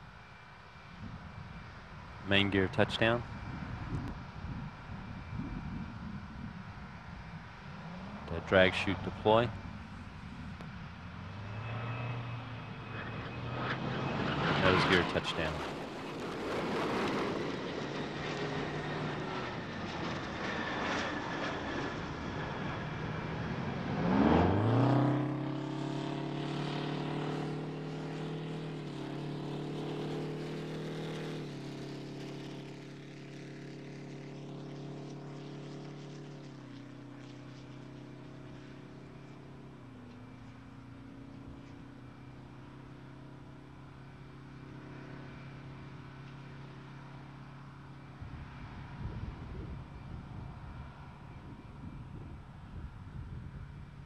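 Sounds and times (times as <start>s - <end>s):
loud motor-like drone: 2.4s - 40.2s.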